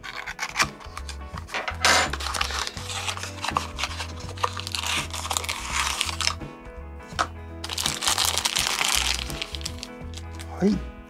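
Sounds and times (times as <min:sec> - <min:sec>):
cardboard box rustling and scraping: 0:00.0 - 0:06.4
background music with bass line: 0:00.0 - 0:11.0.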